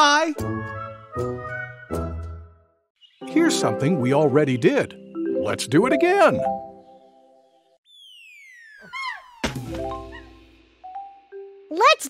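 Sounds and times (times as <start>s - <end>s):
whistle tone gliding downward: 7.8s - 9.4s.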